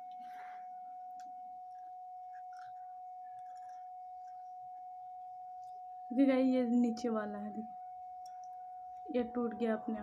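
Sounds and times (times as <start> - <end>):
high-pitched hum: 0.0 - 10.0.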